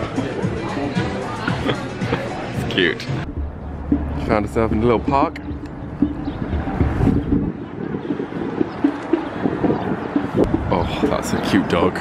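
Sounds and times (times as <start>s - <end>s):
wind buffeting microphone: 3.3s - 12.0s.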